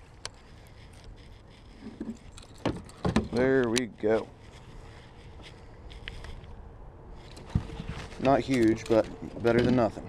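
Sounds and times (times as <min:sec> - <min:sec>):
dull thump: 0:01.9 - 0:03.4.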